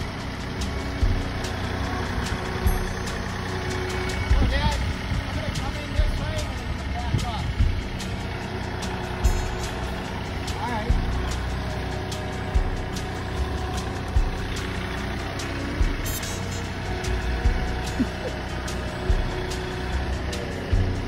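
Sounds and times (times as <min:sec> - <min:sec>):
tractor diesel engine running: 0:00.0 - 0:21.0
low thumps: 0:07.6 - 0:08.2, 0:17.1 - 0:18.4.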